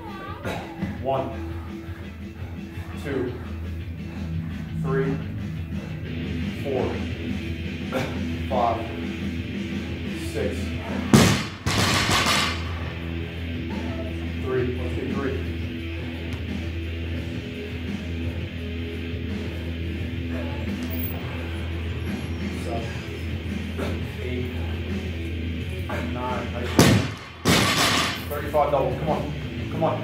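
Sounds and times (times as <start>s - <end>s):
guitar rock music: 3.5s - 30.0s.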